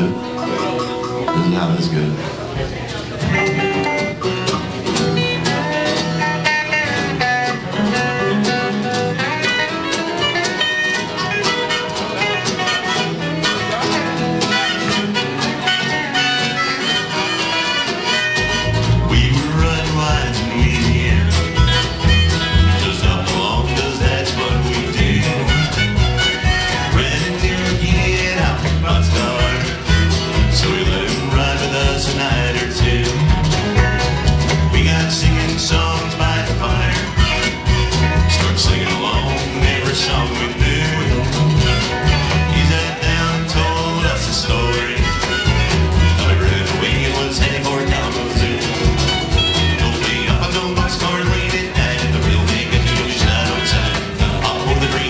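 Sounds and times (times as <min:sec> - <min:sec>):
acoustic guitar: 0:00.0 - 0:55.0
drums: 0:00.0 - 0:55.0
upright bass: 0:00.0 - 0:55.0.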